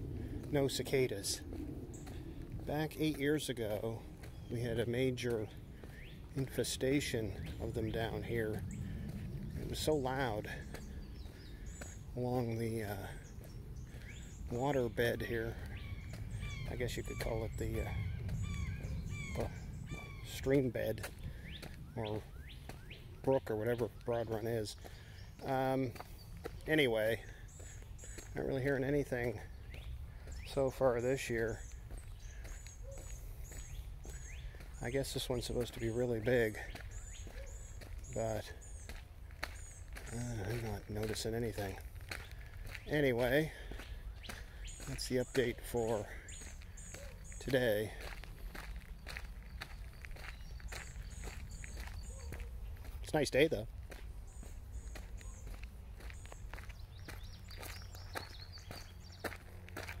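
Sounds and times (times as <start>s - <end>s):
footsteps on gravel: 0.0s - 60.0s
low outdoor rumble: 0.0s - 60.0s
small birds chirping: 0.0s - 60.0s
small bird chirping: 15.7s - 20.3s, 46.2s - 53.1s, 54.2s - 60.0s.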